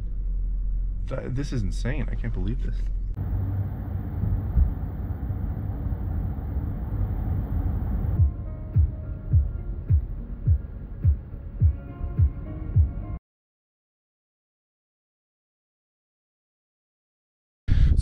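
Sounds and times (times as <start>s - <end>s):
road noise inside moving van: 2.8s - 9.1s
deep kick drum beat: 8.2s - 13.0s.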